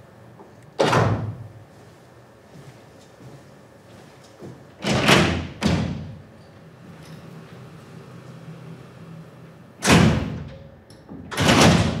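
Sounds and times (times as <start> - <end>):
heavy steel door banging shut: 0.8 - 1.4, 4.8 - 6.2, 9.8 - 12.0.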